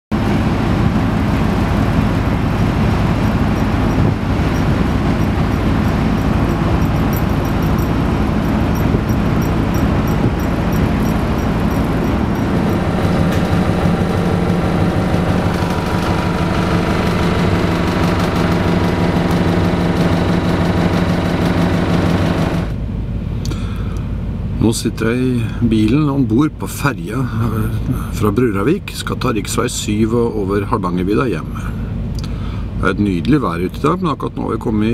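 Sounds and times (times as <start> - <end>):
ferry engines droning: 0.1 - 34.9
rushing wind on deck: 0.2 - 23.4
hum inside parked car: 0.2 - 34.9
faint regular ticking: 2.8 - 13.8.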